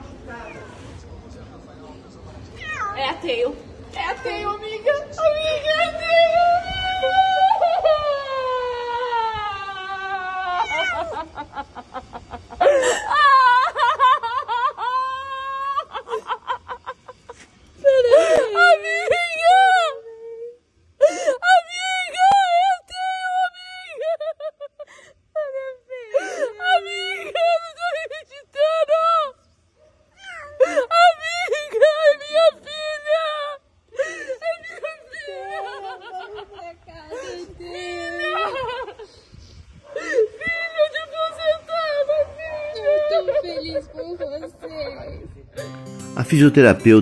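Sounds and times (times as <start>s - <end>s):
woman wailing and crying: 6.4s - 11.4s, 17.8s - 24.5s, 25.4s - 29.3s, 30.3s - 36.4s, 37.0s - 39.0s, 40.0s - 44.7s.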